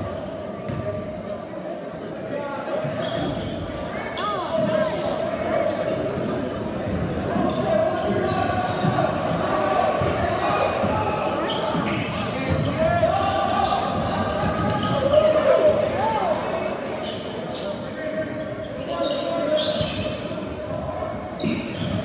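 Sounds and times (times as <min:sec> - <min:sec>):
spectators chattering and calling: 0:00.0 - 0:22.0
sneakers squeaking: 0:00.6 - 0:01.0, 0:02.8 - 0:22.0.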